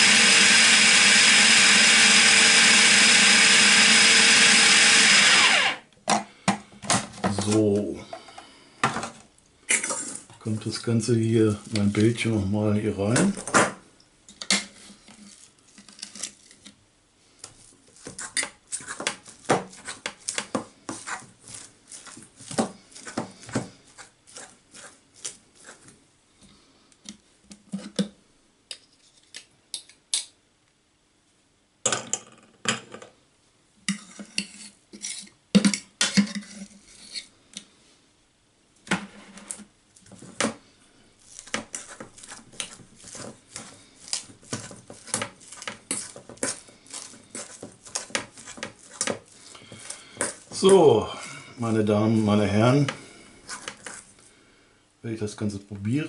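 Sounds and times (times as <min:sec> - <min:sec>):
fork scraping bowls: 0:18.0 - 0:25.9, 0:33.9 - 0:35.4, 0:41.3 - 0:50.6, 0:52.9 - 0:54.2.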